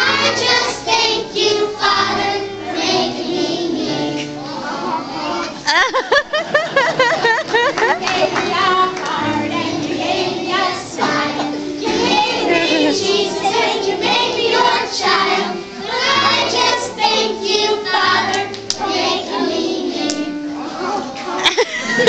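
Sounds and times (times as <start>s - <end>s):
children singing together: 0.0s - 22.0s
instrumental accompaniment low notes: 6.8s - 22.0s.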